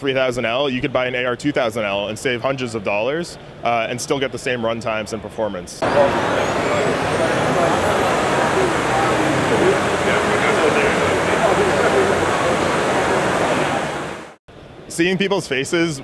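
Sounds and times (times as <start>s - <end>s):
faint high whine: 5.8s - 15.7s.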